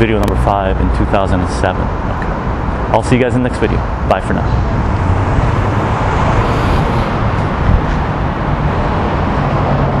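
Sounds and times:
low engine hum: 0:00.0 - 0:10.0
road traffic rumble: 0:00.0 - 0:10.0.

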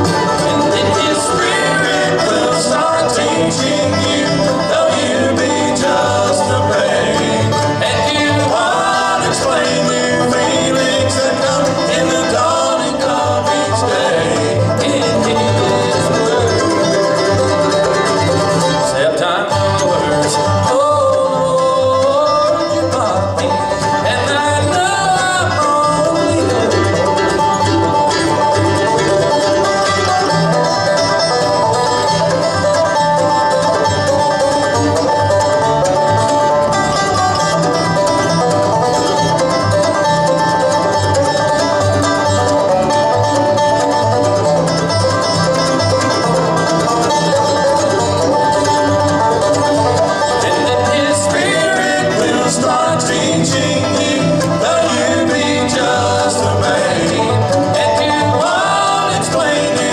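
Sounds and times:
bluegrass band playing: 0:00.0 - 0:59.9
resonator banjo picking: 0:00.0 - 0:59.9.

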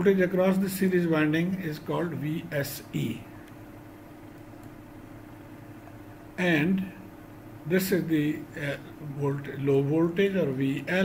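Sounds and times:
background hum with faint tone: 0:00.0 - 0:11.0.

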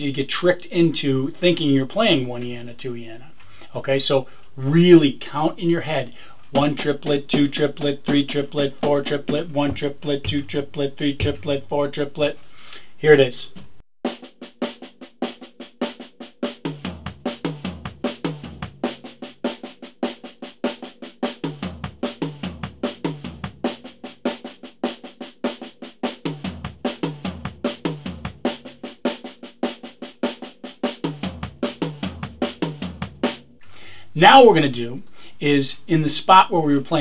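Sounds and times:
tom drums: 0:00.0 - 0:37.0
bass drum note: 0:06.5 - 0:11.8
snare drum triplets: 0:06.5 - 0:12.0, 0:14.1 - 0:33.4.

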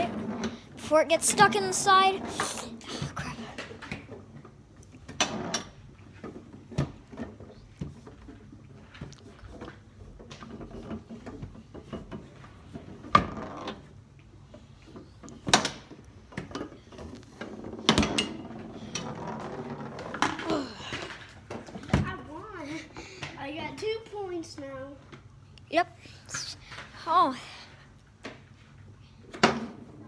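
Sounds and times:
foosball rods sliding and rattling: 0:00.0 - 0:25.3
foosball ball knocks and clacks: 0:14.9 - 0:20.6.

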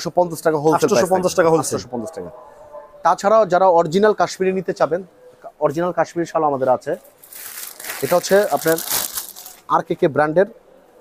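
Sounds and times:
plastic bag crinkling: 0:07.1 - 0:09.7.

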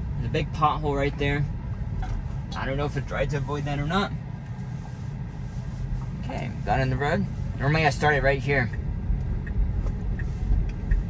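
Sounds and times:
road and tyre rumble inside car: 0:00.0 - 0:11.0.

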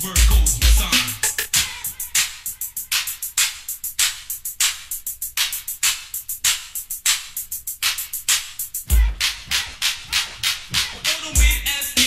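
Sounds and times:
sharp drum machine percussion: 0:00.0 - 0:12.0.

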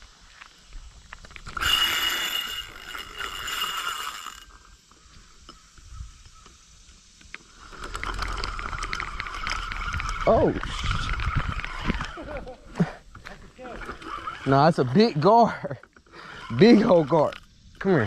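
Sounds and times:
fishing reel gears whirring: 0:01.2 - 0:05.0, 0:07.4 - 0:18.0.

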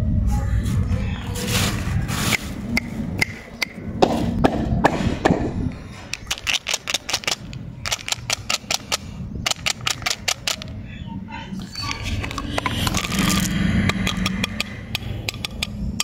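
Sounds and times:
hard plastic clicking and clattering: 0:06.1 - 0:10.7.

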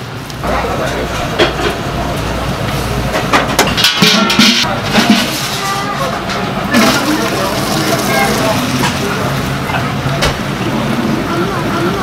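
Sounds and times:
broth boiling and bubbling: 0:06.5 - 0:10.1.

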